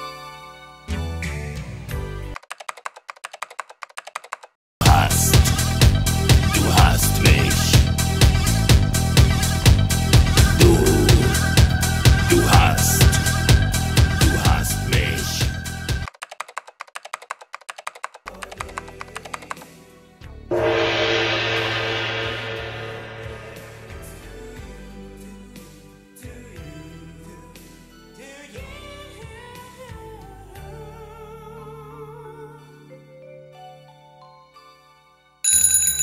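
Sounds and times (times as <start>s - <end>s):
music: 0.0s - 2.4s, 4.8s - 16.1s, 18.3s - 35.4s
rapid typing on laptop keyboard: 2.4s - 4.6s, 16.1s - 19.6s
low hum: 20.5s - 25.0s.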